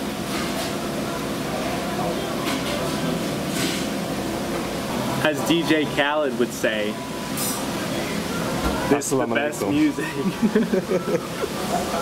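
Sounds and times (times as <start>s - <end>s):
air conditioning hum: 0.0s - 12.0s
ceiling fan: 0.0s - 12.0s.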